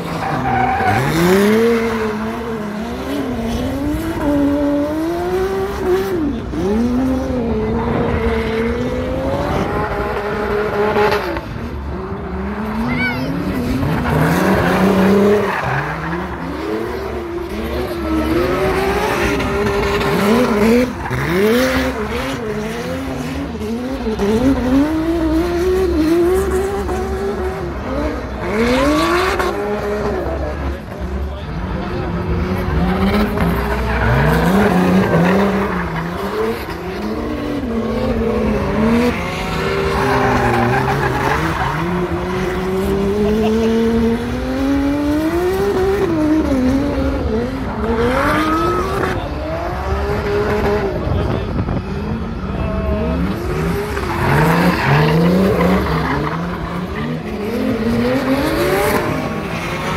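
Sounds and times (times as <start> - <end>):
car engines revving: 0.0 - 59.9.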